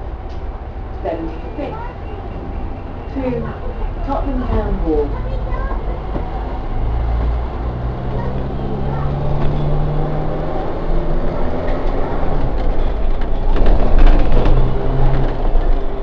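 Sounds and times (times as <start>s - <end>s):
bus diesel engine hum: 0.0s - 16.0s.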